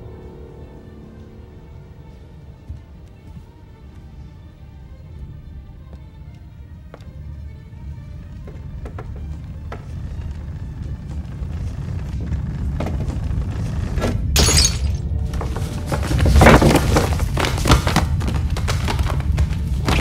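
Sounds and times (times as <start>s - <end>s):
deep rumble of stampede: 7.7s - 14.4s, 15.0s - 20.0s
bust shattering on wooden floor: 14.3s - 15.5s.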